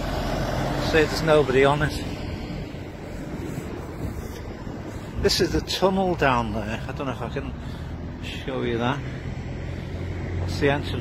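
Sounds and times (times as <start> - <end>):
bus engine and tyre noise: 0.0 - 11.0
street traffic rumble: 0.0 - 11.0
wind on microphone: 2.0 - 5.9.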